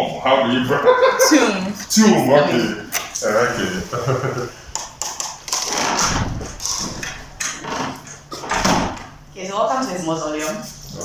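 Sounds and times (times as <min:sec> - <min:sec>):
people talking indistinctly: 0:00.0 - 0:04.5, 0:09.4 - 0:11.0
low rumble of movement: 0:05.7 - 0:09.1.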